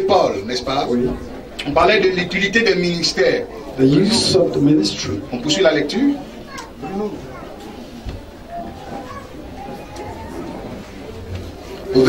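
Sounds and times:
low room noise: 0.0 - 12.0
faint indistinct talk: 5.0 - 12.0.

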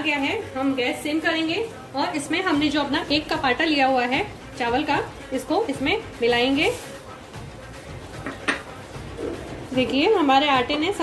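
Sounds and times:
spoon knocking on pan: 8.2 - 8.8.

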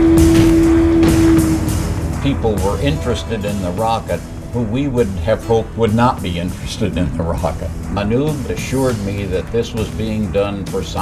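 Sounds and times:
held musical note: 0.0 - 9.1
low rumble: 0.0 - 9.6.

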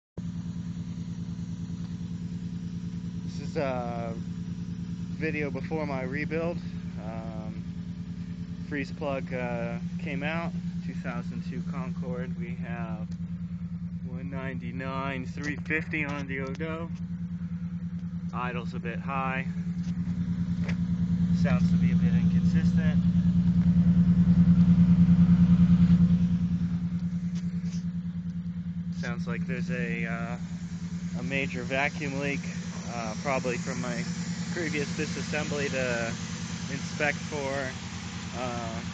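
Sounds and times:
car engine idling roughly: 0.2 - 38.9.

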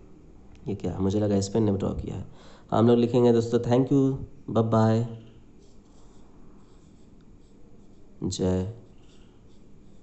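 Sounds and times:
stylus scratching on glass: 5.2 - 10.0.

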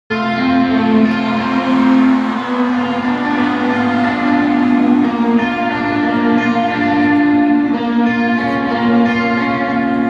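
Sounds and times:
guitar: 0.1 - 10.0
live band sustained chords: 0.1 - 10.0.

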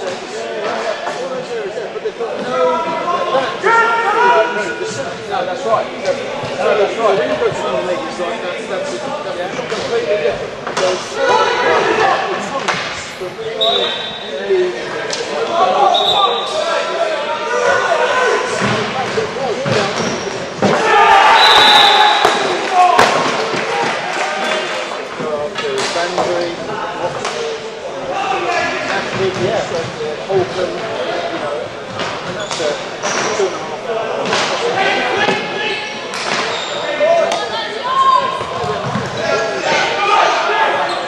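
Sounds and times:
players shouting: 2.4 - 9.4, 13.3 - 19.9, 20.6 - 25.0, 34.1 - 41.0
whistle blasts: 15.9 - 16.5, 21.3 - 22.5.

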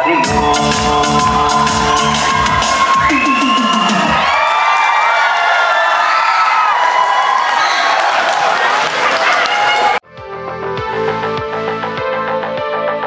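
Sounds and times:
dance music with fast beat: 0.0 - 4.4
audience cheering and whooping: 0.0 - 10.0.

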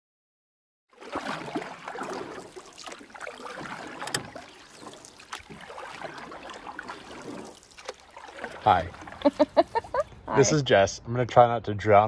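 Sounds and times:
muffled water churning and sloshing: 0.9 - 10.3.

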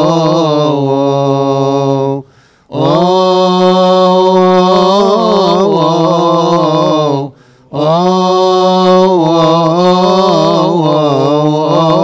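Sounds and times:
man chanting a hymn: 0.0 - 12.0.

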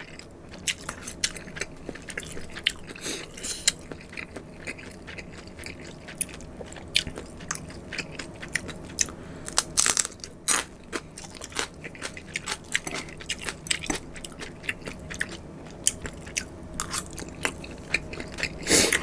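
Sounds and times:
crunchy food chewing: 0.0 - 19.0.

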